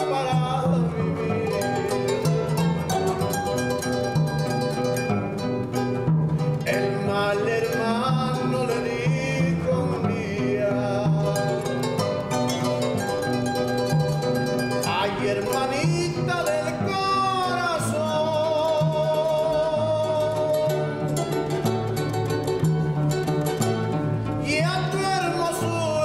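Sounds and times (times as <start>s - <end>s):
man singing: 0.0s - 3.7s, 6.6s - 12.8s, 14.3s - 21.6s, 24.4s - 26.0s
harp playing: 0.0s - 9.4s, 10.1s - 26.0s.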